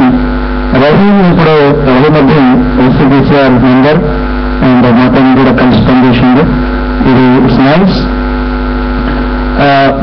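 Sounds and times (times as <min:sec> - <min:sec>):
man speaking into a microphone: 0:00.0 - 0:08.2, 0:09.5 - 0:10.0
electrical mains hum: 0:00.0 - 0:10.0.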